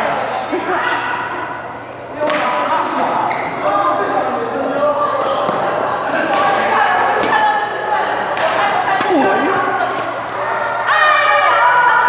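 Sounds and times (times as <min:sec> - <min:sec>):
people talking in a hall: 0:00.0 - 0:12.0
racket hitting shuttlecock: 0:02.2 - 0:02.7, 0:05.2 - 0:07.6, 0:08.3 - 0:10.1.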